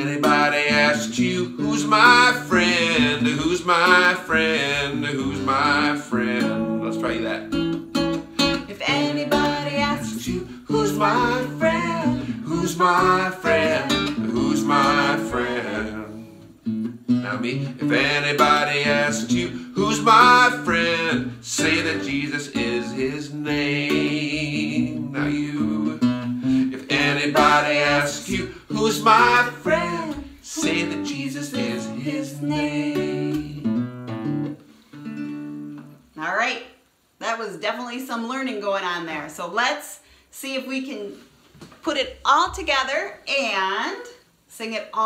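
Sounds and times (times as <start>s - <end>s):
man and woman singing: 0.0s - 7.4s, 8.4s - 33.8s
acoustic guitar strumming: 0.0s - 36.1s.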